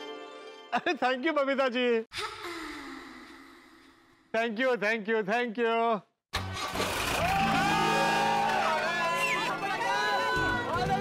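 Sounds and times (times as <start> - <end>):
music: 0.0 - 0.8, 7.2 - 11.0
jeep engine starting: 6.4 - 8.0.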